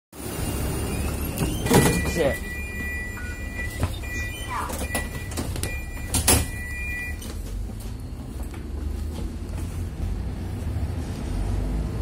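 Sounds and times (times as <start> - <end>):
high electronic tone: 0.4 - 7.2.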